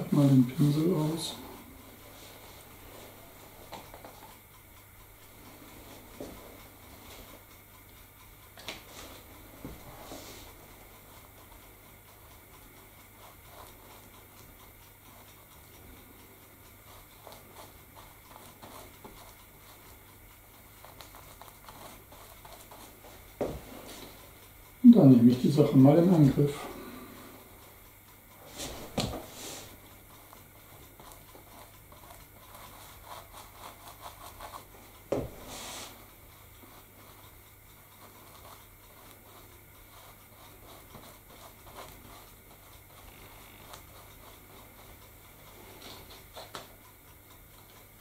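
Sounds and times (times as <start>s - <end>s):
paintbrush scratching and dabbing: 16.8s - 20.0s, 20.8s - 24.3s, 28.4s - 45.0s.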